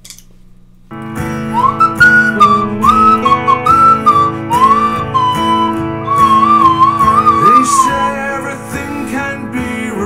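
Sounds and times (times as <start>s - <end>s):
recorded song with guitar: 0.9s - 10.0s
slide whistle gliding between notes: 1.5s - 8.5s.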